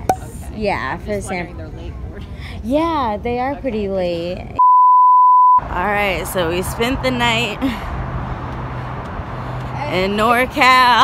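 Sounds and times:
vehicle engine hum: 5.6 - 11.0.

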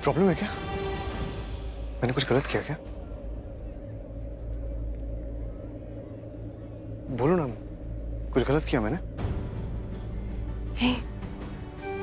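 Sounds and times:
dramatic background score drone: 0.0 - 12.0.

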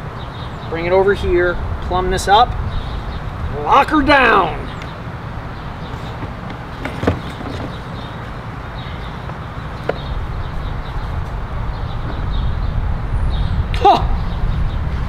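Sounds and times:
low outdoor background rumble: 0.0 - 15.0
faint knocks: 5.9 - 8.3.

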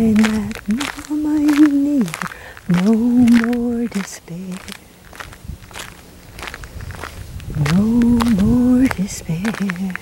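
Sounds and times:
footsteps crunching on loose ground: 0.0 - 10.0.

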